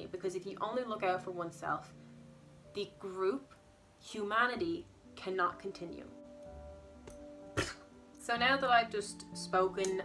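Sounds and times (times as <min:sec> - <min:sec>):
music of sustained tones: 0:00.5 - 0:10.0
short sharp cough: 0:07.6 - 0:07.9.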